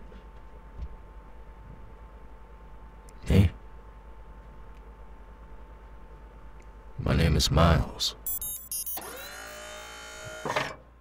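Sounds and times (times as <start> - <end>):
synthesized electronic tone: 8.3 - 9.8.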